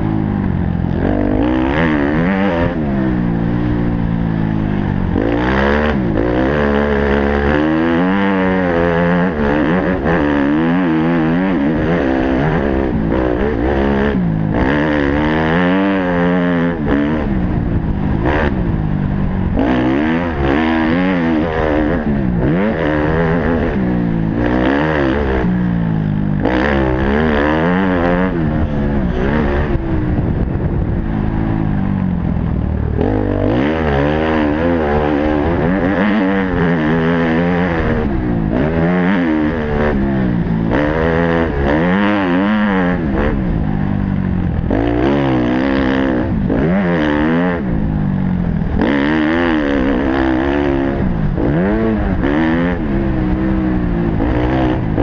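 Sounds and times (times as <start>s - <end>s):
motorbike engine revving: 0.0s - 55.0s.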